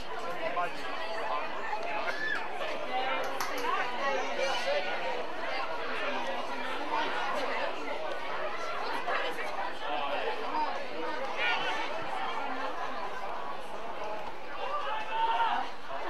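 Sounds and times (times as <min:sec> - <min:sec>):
many voices calling out and chattering: 0:00.0 - 0:16.0.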